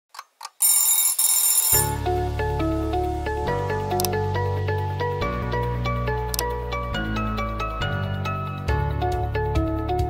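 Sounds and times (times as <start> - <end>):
alarm clock bell ringing: 0.6 - 2.0
alarm clock ticks: 0.6 - 2.0
intro music with steady bass: 2.0 - 10.0.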